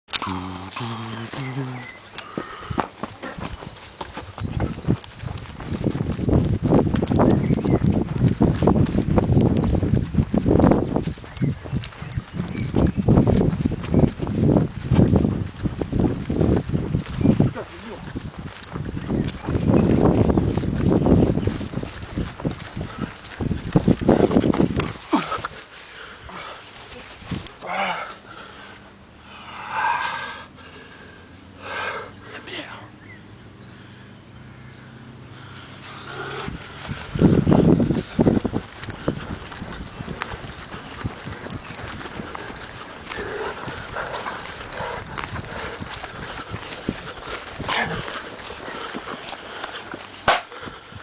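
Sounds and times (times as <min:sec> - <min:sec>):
footsteps running on grass: 0:00.3 - 0:29.0, 0:35.3 - 0:51.0.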